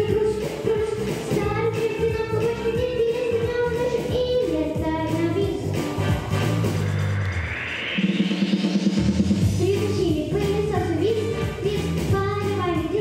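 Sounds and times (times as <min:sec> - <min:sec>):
girl singing into microphone: 0:00.0 - 0:05.7, 0:09.6 - 0:13.0
pop backing track: 0:00.0 - 0:13.0.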